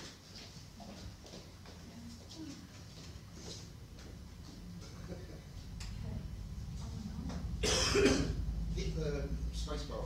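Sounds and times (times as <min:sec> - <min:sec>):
low steady hum: 0:00.0 - 0:10.0
person coughing: 0:07.6 - 0:08.4.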